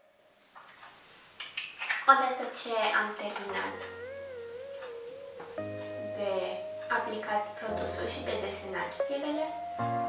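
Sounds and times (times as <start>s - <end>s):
small objects clicking and rustling: 0.5s - 2.1s.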